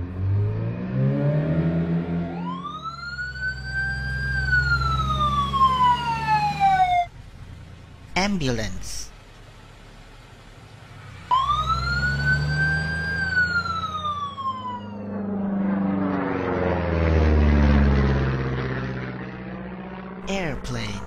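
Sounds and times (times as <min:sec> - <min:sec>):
aircraft passing overhead: 0:00.0 - 0:07.6, 0:10.9 - 0:21.0
ambulance siren wailing: 0:00.2 - 0:07.1, 0:11.2 - 0:18.0
low engine rumble: 0:02.3 - 0:21.0.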